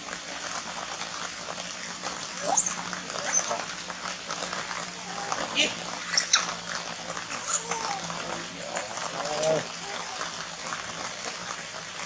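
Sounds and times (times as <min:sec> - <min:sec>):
macaque whimpering call: 0:02.4 - 0:03.5
macaques squeaking: 0:02.4 - 0:03.6, 0:05.2 - 0:06.6.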